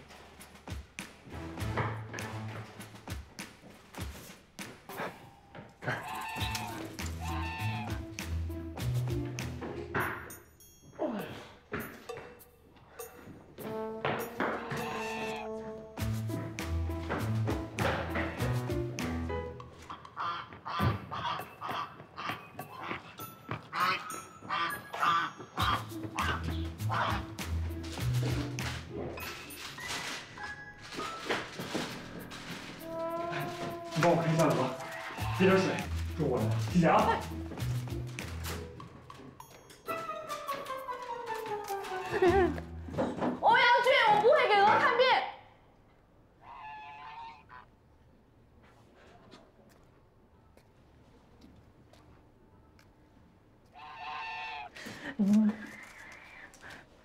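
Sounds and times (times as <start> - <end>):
waterfowl quacking and honking: 6.0 - 7.9, 14.6 - 15.6, 19.9 - 23.1, 23.7 - 27.3, 33.4 - 35.9, 46.4 - 47.7, 53.8 - 54.7.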